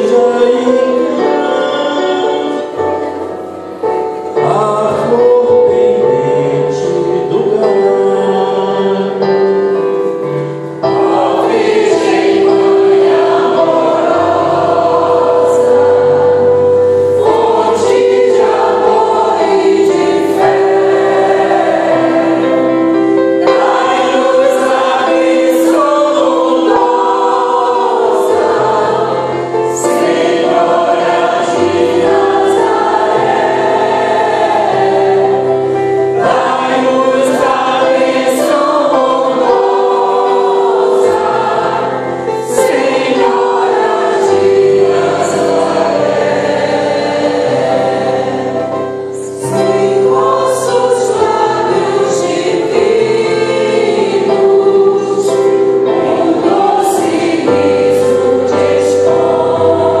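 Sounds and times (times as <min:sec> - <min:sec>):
digital piano: 0:00.0 - 1:00.0
mixed choir singing a hymn: 0:00.0 - 1:00.0.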